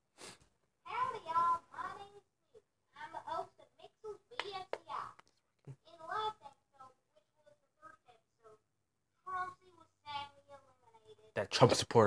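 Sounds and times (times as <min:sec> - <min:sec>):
child's voice: 0:00.8 - 0:08.6, 0:09.2 - 0:11.3.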